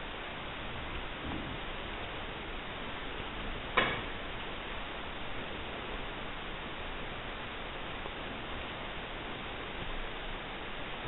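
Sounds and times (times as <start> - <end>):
recording hiss: 0.0 - 11.0.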